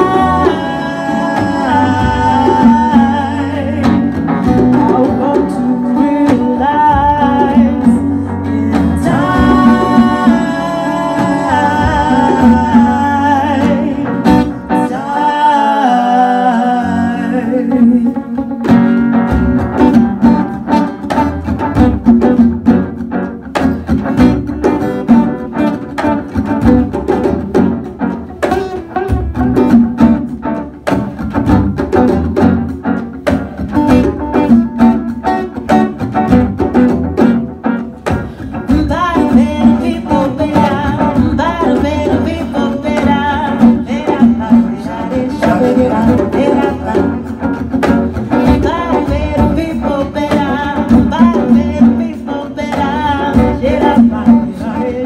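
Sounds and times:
djembe hand drums: 0.0s - 14.9s, 17.3s - 55.0s
woman singing: 0.0s - 18.6s, 38.6s - 55.0s
acoustic guitar: 0.0s - 55.0s.

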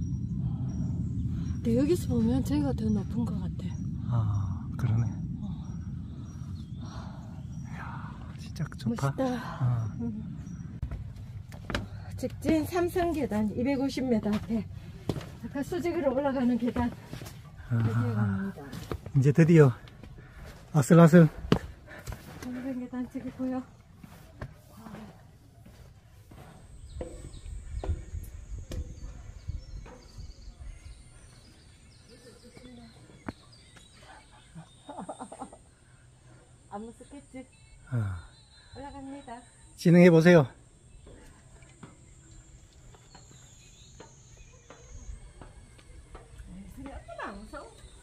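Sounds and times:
footsteps on steel stairs: 10.8s - 13.3s, 14.2s - 28.1s, 42.9s - 47.8s.

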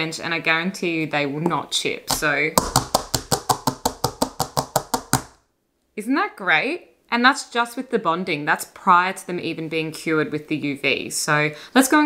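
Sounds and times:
nails tapping on countertop: 2.1s - 5.4s.

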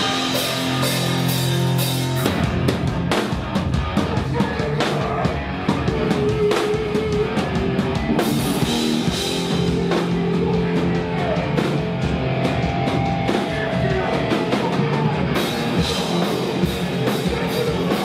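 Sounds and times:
bass guitar: 0.0s - 18.0s
distorted electric guitars: 0.0s - 18.0s
drum kit pounding: 0.0s - 18.0s
person singing into a microphone: 4.1s - 8.4s, 13.3s - 18.0s.

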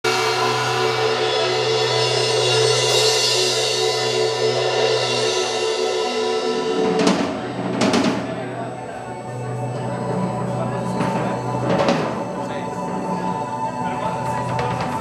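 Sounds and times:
cymbal wash: 0.0s - 14.5s
rock band sustained chord: 0.0s - 15.0s
sharp drum hits: 6.6s - 8.6s.

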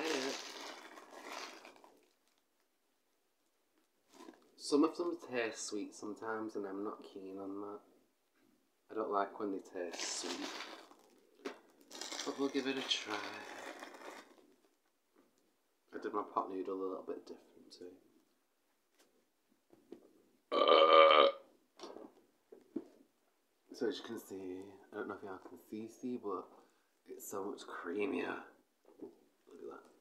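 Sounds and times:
plastic bag crinkling: 0.0s - 2.4s, 9.9s - 14.7s.

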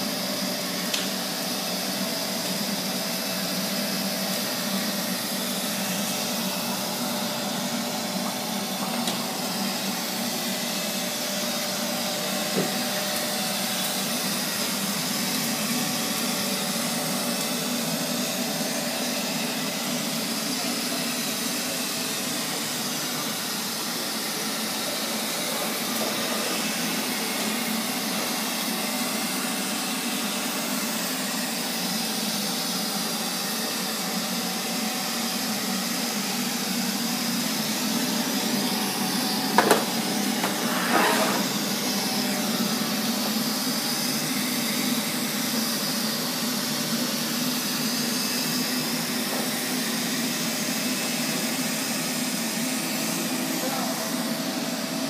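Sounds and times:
robot vacuum cleaner running: 0.0s - 55.0s.

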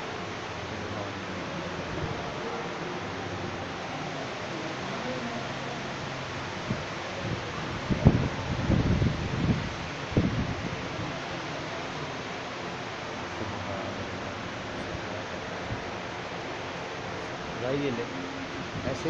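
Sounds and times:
room noise hiss: 0.0s - 19.0s.

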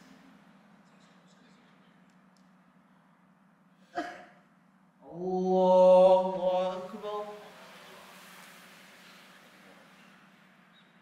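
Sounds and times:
man chanting: 5.0s - 8.2s.

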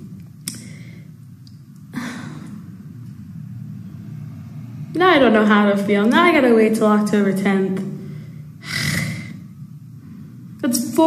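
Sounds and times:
woman breathing: 0.5s - 1.2s, 1.9s - 2.6s, 7.9s - 9.5s.

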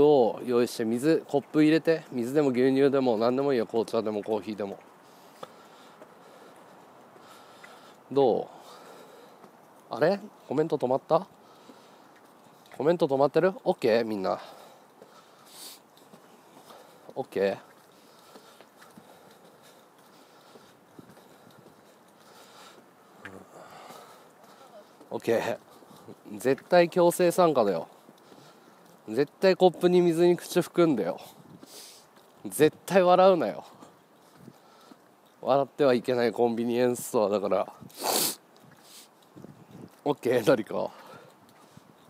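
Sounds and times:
quiet street background noise: 0.0s - 42.0s
faint breath: 5.0s - 9.7s, 11.4s - 12.6s, 14.4s - 17.1s, 17.8s - 26.1s, 28.1s - 29.0s, 31.2s - 32.1s, 33.7s - 35.1s, 40.9s - 42.0s
footsteps of hard soles: 14.9s - 32.9s.

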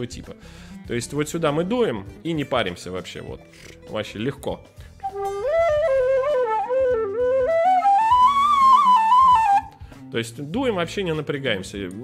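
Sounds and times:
tin whistle melody: 5.0s - 9.8s.

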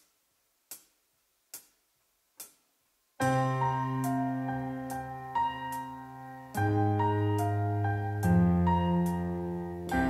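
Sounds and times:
drumsticks clicking together: 0.7s - 1.8s, 2.4s - 2.7s.

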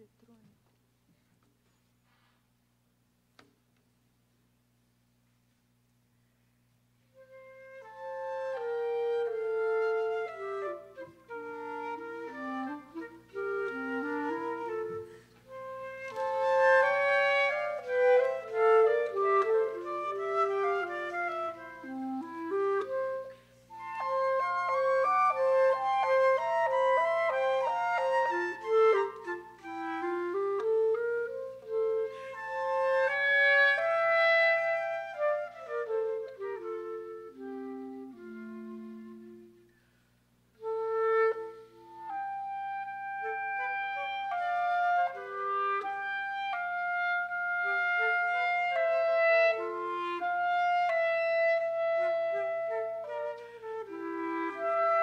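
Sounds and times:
flute and clarinet duo: 7.1s - 55.0s.

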